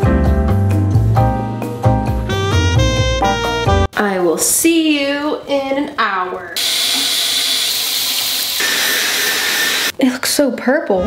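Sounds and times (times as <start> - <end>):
water running from tap: 6.6 - 9.9.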